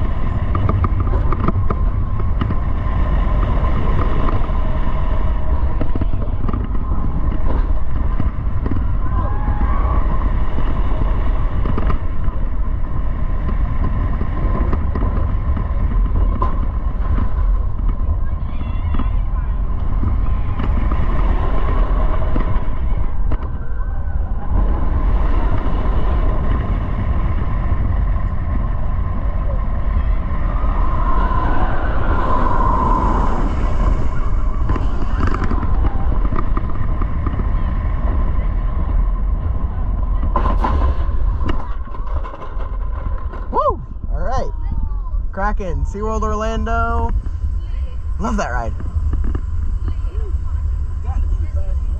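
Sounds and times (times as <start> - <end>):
roller coaster train roaring on track: 0.0 - 51.9
wind rushing over microphone: 0.0 - 51.9.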